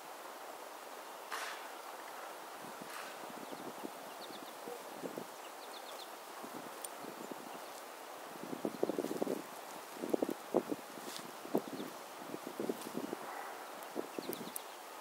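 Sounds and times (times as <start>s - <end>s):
songbirds chirping: 0.1s - 15.0s
crackling rustles: 1.3s - 15.0s.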